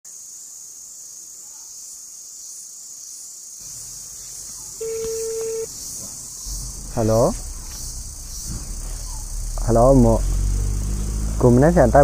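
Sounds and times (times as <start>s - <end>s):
insects chorus: 0.1s - 12.0s
short steady tone: 4.8s - 5.7s.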